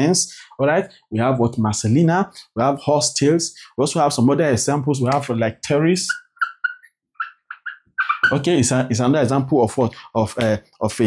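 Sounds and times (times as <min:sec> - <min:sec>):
marker squeaking on whiteboard: 0:05.9 - 0:08.8.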